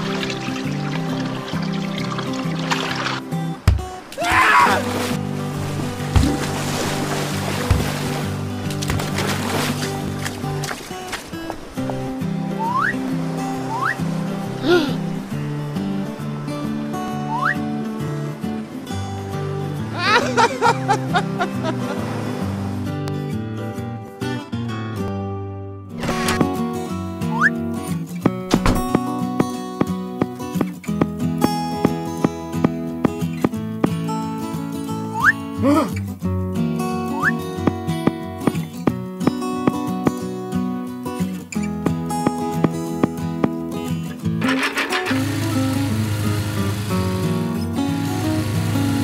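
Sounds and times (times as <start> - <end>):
light background music: 0.0 - 24.2
cartoon laughter: 19.9 - 21.8
lawn mower engine buzzing: 44.4 - 49.0.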